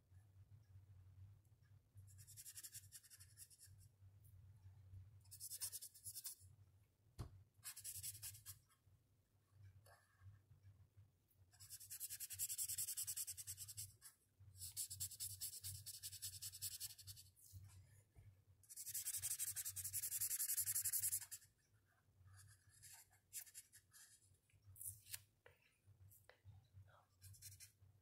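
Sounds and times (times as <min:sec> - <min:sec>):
marker scribbling on paper: 0:05.3 - 0:06.4, 0:07.6 - 0:08.6, 0:11.6 - 0:17.3, 0:18.7 - 0:21.5, 0:22.4 - 0:24.2, 0:27.2 - 0:27.8.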